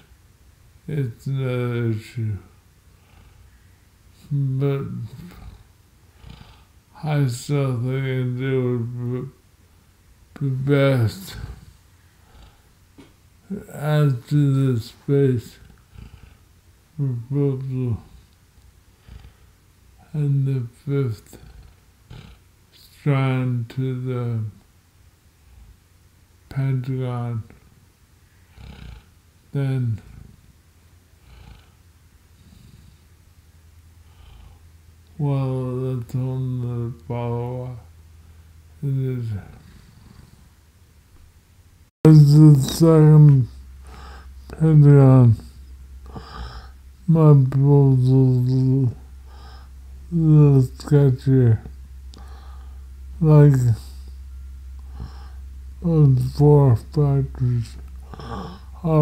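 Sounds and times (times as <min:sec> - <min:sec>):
low room rumble: 0:00.0 - 0:59.0
low steady hum: 0:00.0 - 0:59.0
man speaking: 0:00.9 - 0:02.5, 0:04.2 - 0:05.5, 0:07.0 - 0:09.4, 0:10.4 - 0:11.6, 0:13.5 - 0:15.6, 0:17.0 - 0:18.1, 0:20.0 - 0:21.4, 0:22.8 - 0:24.6, 0:26.5 - 0:27.5, 0:29.6 - 0:30.1, 0:35.2 - 0:37.9, 0:38.8 - 0:39.6, 0:42.0 - 0:52.4, 0:53.2 - 0:54.2, 0:55.0 - 0:59.0
faint breath: 0:11.2 - 0:13.1, 0:15.6 - 0:16.6, 0:18.0 - 0:19.7, 0:28.2 - 0:29.1, 0:34.0 - 0:34.8, 0:39.4 - 0:40.6, 0:43.5 - 0:44.5, 0:45.4 - 0:46.8, 0:49.1 - 0:49.9, 0:52.1 - 0:52.9, 0:53.8 - 0:55.6, 0:58.0 - 0:58.8.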